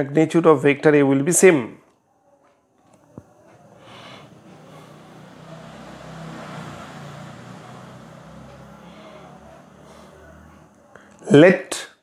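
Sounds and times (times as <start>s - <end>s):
road vehicle passing by: 3.0s - 11.2s.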